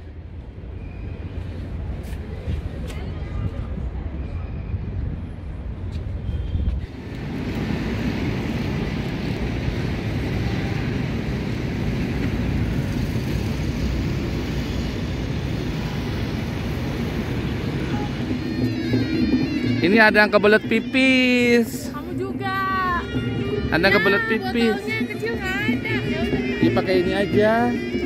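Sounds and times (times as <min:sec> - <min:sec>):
traffic hum: 0:04.9 - 0:28.0.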